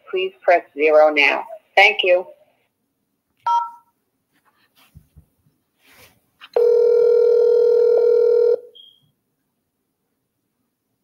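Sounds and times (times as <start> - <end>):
telephone keypad beep: 3.5 - 3.8
telephone ringback ring: 6.6 - 8.9.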